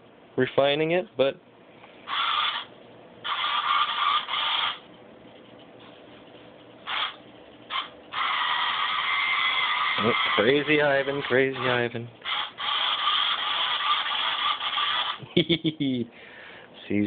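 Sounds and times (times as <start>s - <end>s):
small robot motors whirring: 2.1s - 4.8s, 6.9s - 15.2s.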